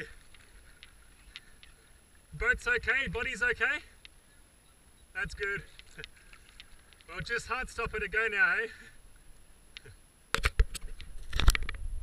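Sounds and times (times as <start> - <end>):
wind: 0.0 - 12.0.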